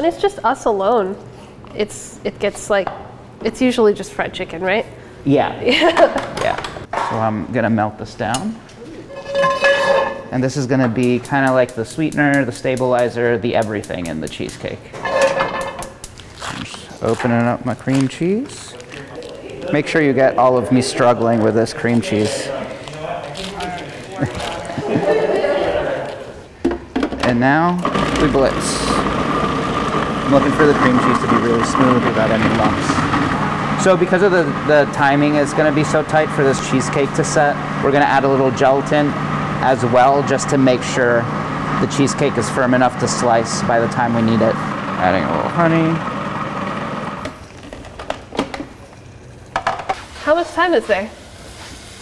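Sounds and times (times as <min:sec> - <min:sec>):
kitchen utensils clicking: 0:10.9 - 0:16.1
foil wrapper crinkling: 0:16.0 - 0:19.7, 0:22.1 - 0:24.8
voice sounds: 0:22.5 - 0:26.4.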